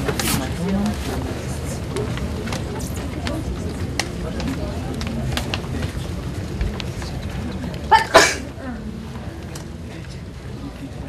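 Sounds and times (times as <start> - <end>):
person sneezing: 7.9 - 8.5.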